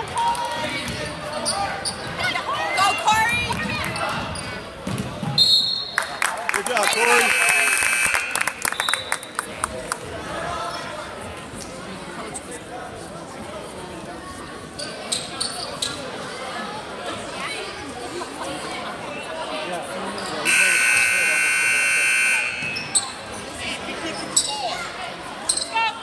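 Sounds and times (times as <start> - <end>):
voices in a large hall: 0.0 - 26.0
scoreboard buzzer: 7.1 - 8.7, 20.5 - 22.9.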